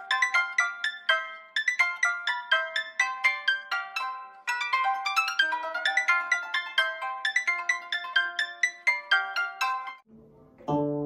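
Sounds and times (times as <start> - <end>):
plucked zither duo melody: 0.0 - 11.0.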